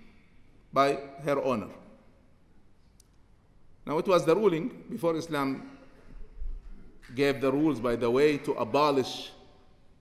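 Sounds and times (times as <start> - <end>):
man speaking: 0.7 - 2.0, 3.8 - 5.8, 7.0 - 9.6.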